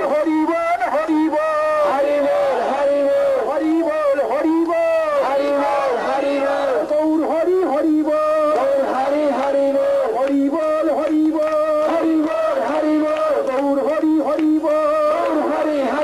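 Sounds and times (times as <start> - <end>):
devotional chanting: 0.0 - 16.0.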